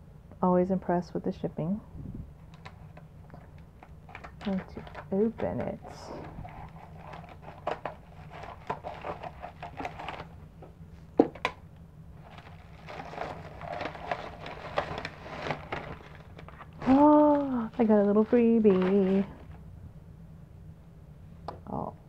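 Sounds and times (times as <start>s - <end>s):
plastic mailer crinkling: 2.4s - 19.6s.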